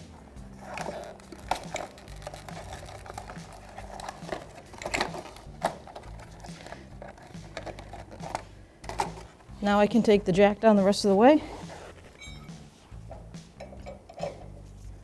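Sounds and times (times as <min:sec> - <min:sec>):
soft background music: 0:00.0 - 0:15.0
plastic package clicks and crinkles: 0:00.8 - 0:09.3.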